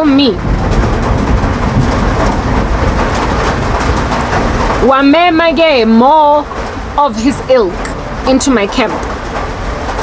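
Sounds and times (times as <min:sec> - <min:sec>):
loud rumbling noise with hiss: 0:00.0 - 0:10.0.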